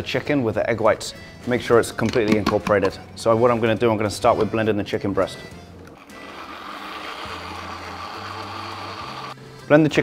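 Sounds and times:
blender motor running: 0:06.0 - 0:09.4.

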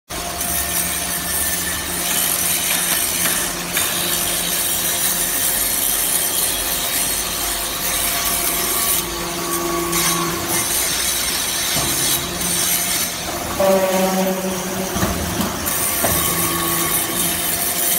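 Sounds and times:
motor and pump hum: 0:00.1 - 0:17.9.

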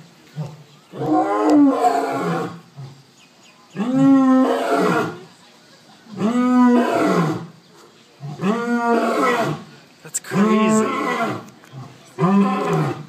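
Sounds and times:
lion roaring: 0:00.4 - 0:03.0, 0:03.8 - 0:05.2, 0:06.2 - 0:07.6, 0:08.2 - 0:09.7, 0:10.3 - 0:13.0.

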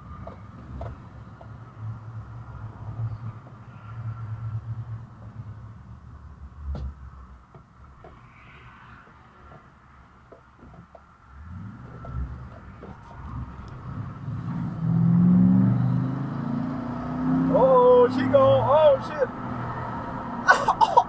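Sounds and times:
car engine accelerating: 0:11.3 - 0:20.6.

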